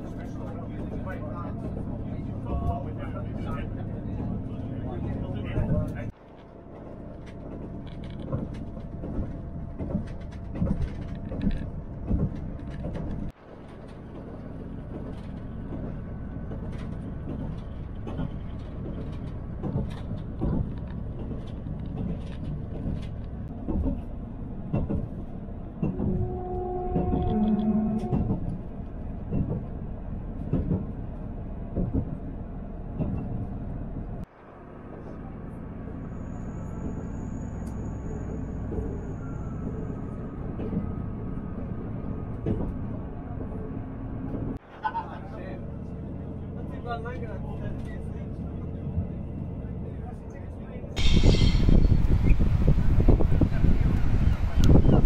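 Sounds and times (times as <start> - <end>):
train low rumble: 0.0 - 55.0
wheels clattering on track: 0.0 - 55.0.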